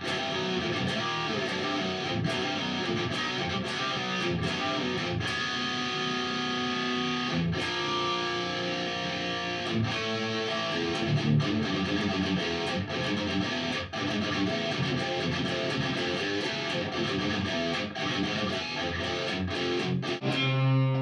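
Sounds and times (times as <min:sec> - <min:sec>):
electric guitar playing: 0:00.0 - 0:21.0.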